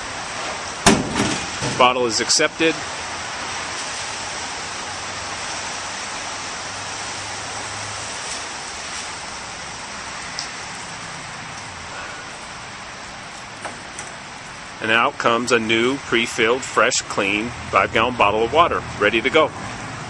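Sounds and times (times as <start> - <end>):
steady background hiss: 0.0 - 20.0.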